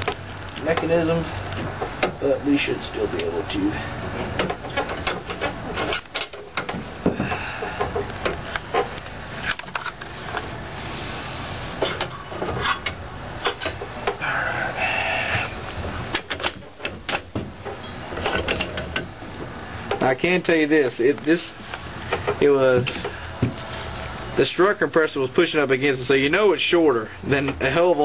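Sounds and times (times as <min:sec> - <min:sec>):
metal clanks and clicks: 0:16.1 - 0:19.1.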